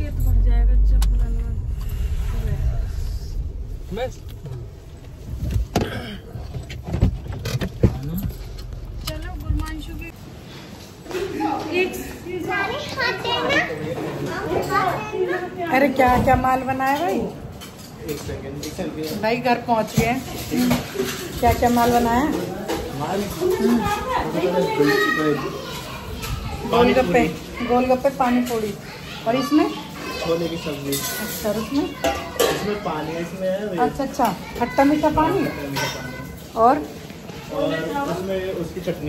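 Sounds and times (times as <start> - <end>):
people talking: 0.0 - 4.6
car engine low rumble: 0.0 - 10.1
child talking: 12.5 - 15.6, 23.7 - 26.9, 28.7 - 33.3, 34.3 - 36.4.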